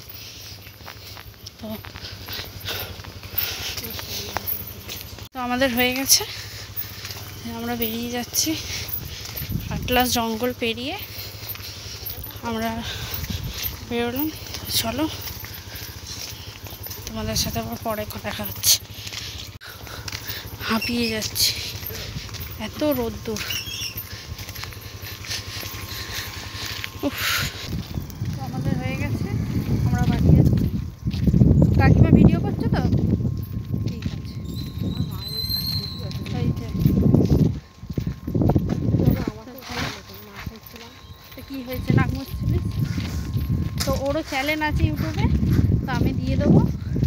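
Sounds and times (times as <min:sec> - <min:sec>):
footsteps on dirt path: 0:00.0 - 0:47.0
low rumble: 0:08.6 - 0:47.0.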